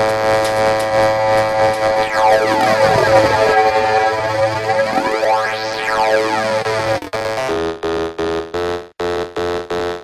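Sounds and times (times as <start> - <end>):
buzzy synth stabs: 1.2 - 7.1.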